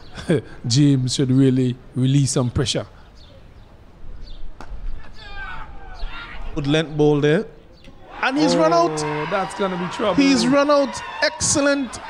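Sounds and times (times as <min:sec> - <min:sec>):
faint high-pitched shouts: 0:05.1 - 0:06.6.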